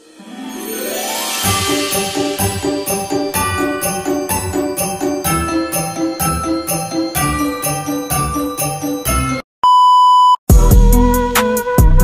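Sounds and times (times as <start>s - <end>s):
jingly intro music: 0.0s - 9.4s
music track with a beat: 10.5s - 12.0s.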